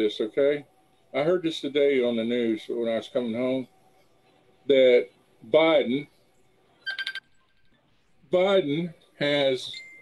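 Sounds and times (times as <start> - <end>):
phone ringtone trill: 6.8 - 7.3.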